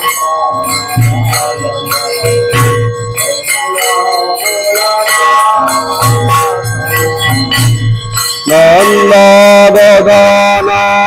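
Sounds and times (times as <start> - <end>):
bells ringing: 0.0 - 11.0
devotional music: 0.0 - 11.0
wavering sung melody: 0.0 - 11.0.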